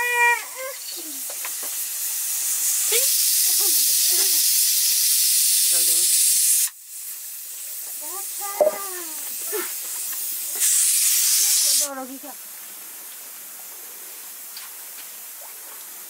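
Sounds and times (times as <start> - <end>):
steam hissing from pressure cooker: 0.0 - 12.3.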